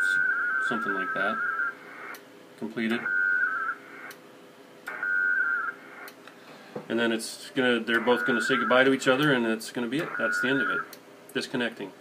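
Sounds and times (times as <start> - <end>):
warbling digital data bursts: 0.0 - 2.2, 3.0 - 4.1, 8.0 - 9.0, 10.0 - 10.9.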